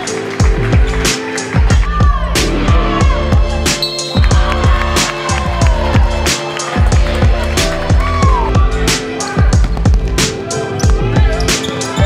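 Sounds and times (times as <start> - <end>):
electronic music with heavy bass beat: 0.1 - 12.0.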